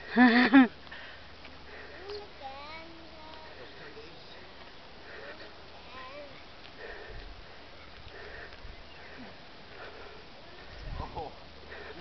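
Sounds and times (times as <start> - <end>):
person breathing heavily: 0.3 - 2.2, 3.2 - 5.7, 6.7 - 12.0.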